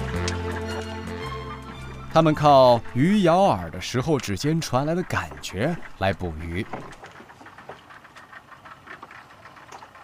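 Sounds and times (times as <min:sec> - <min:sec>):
low uneven boat rumble: 0:00.0 - 0:10.0.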